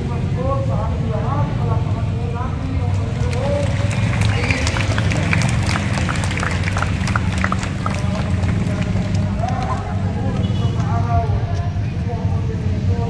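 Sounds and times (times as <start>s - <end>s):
crowd talking outdoors: 0.0s - 13.0s.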